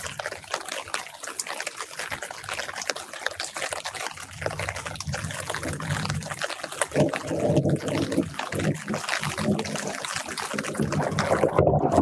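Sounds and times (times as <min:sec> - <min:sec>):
light rain on leaves: 0:00.0 - 0:12.0
water dripping and trickling: 0:00.0 - 0:12.0.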